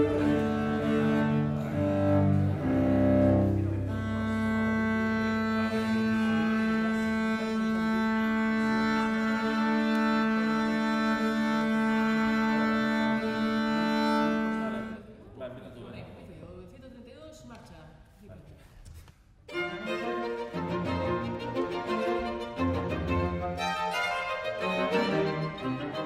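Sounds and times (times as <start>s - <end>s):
string quartet playing bowed strings: 0.0s - 15.2s, 19.5s - 26.0s.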